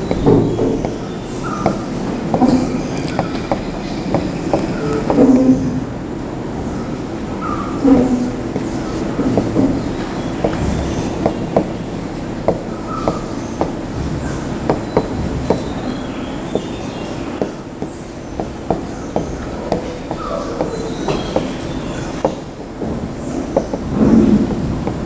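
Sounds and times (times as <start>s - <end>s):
low room noise: 0.0s - 25.0s.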